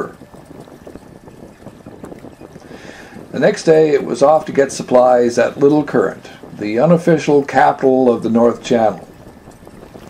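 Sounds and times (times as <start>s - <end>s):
small crackles: 0.0s - 10.0s
wind and water hiss: 0.0s - 10.0s.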